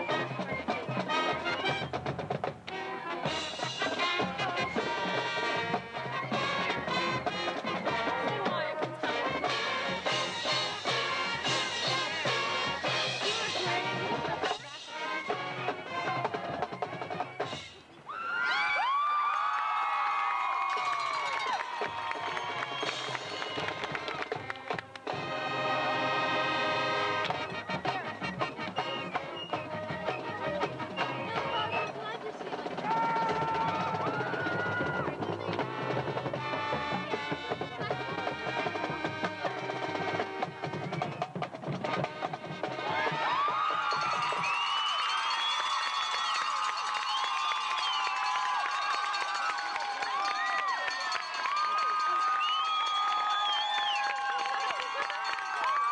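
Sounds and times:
marching band playing: 0.0 - 17.9, 21.3 - 52.2.

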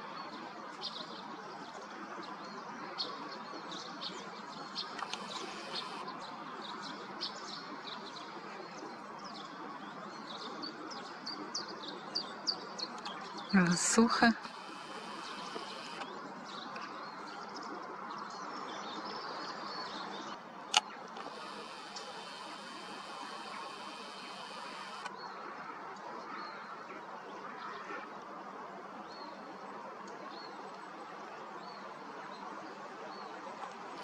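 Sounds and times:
high-pitched bird calls: 12.9 - 16.1, 21.2 - 25.1.

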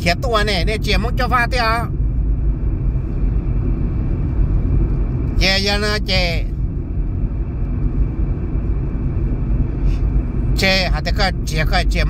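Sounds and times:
man speaking: 0.0 - 1.9, 5.4 - 6.5, 10.6 - 12.0
car cabin road rumble: 0.0 - 12.0.

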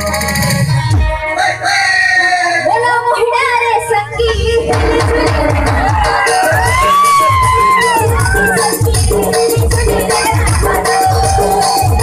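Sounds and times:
low rhythmic beats: 2.3 - 12.0.

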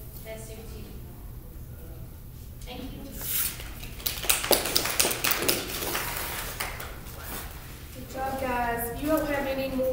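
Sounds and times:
group of people clapping: 3.6 - 7.1.

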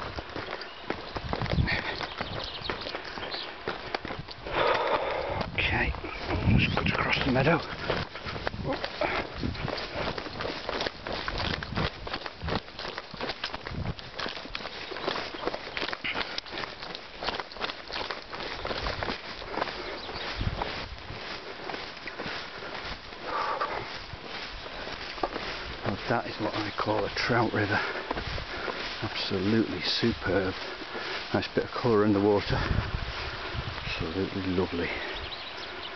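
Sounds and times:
footsteps on grass: 0.0 - 35.9.

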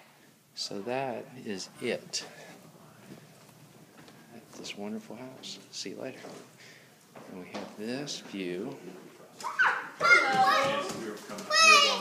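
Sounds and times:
children calling out at play: 9.4 - 12.0.

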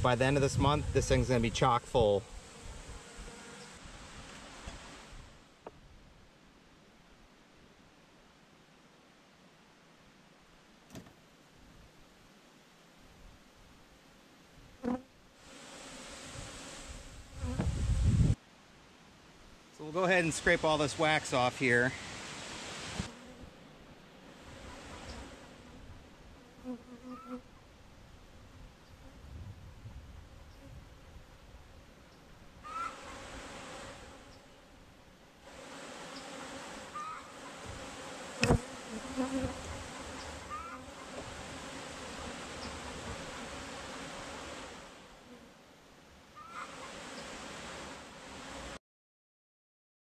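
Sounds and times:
honeybees buzzing: 0.1 - 5.2, 14.8 - 18.4, 20.0 - 27.5, 32.6 - 34.8, 35.4 - 45.6
single bees whining past: 2.2 - 5.2, 24.3 - 27.5, 35.5 - 45.5.

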